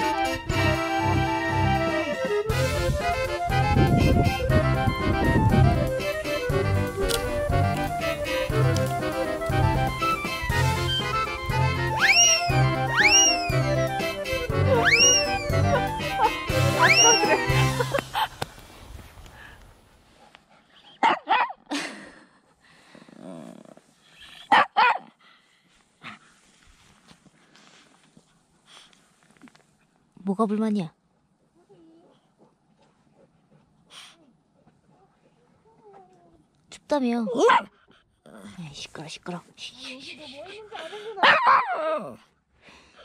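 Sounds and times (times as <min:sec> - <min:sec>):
small dog whining: 0:12.0 - 0:13.6, 0:14.8 - 0:16.0, 0:16.8 - 0:17.4
small dog yelping howls: 0:12.0 - 0:13.6, 0:14.8 - 0:15.9, 0:16.8 - 0:17.4, 0:41.2 - 0:42.0
small dog barking: 0:21.0 - 0:21.6, 0:24.5 - 0:25.1, 0:37.3 - 0:37.7, 0:41.2 - 0:41.8.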